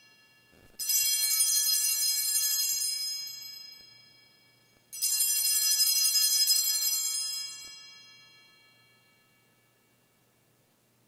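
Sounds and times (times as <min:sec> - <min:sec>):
small altar bells jangling: 0:00.1 - 0:09.4.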